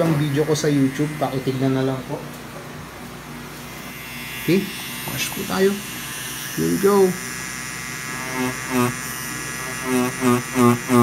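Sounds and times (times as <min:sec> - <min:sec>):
tattoo machine buzzing: 0:00.0 - 0:02.2, 0:03.3 - 0:11.0.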